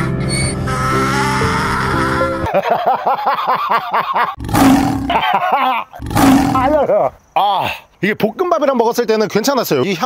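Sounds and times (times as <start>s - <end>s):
man gagging: 3.7s - 6.9s
donkey braying: 4.2s - 6.9s.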